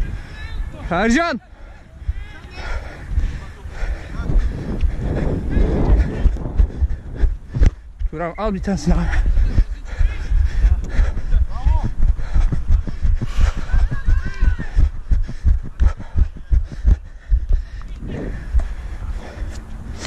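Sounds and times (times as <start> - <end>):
footfalls running on artificial turf: 8.7 - 19.4.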